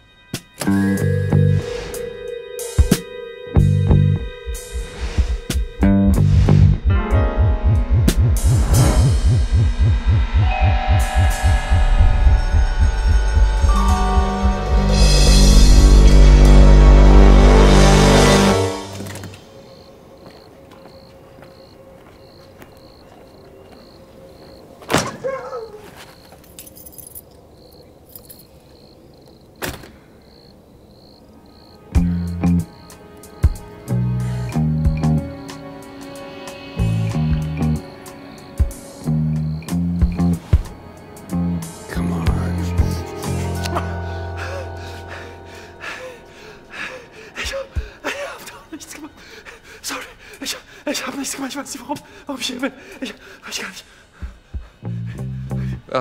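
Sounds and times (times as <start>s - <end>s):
low hum: 3.6s - 18.6s
cricket chirping: 18.8s - 41.9s, 42.9s - 56.0s.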